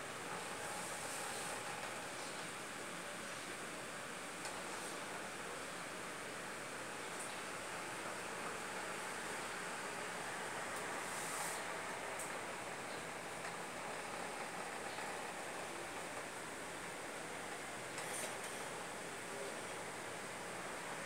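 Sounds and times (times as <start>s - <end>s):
room noise hiss: 0.0s - 21.0s.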